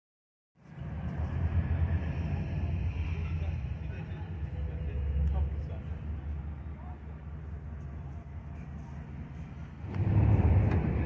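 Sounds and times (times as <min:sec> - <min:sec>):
low rumble of street traffic: 0:00.6 - 0:11.0.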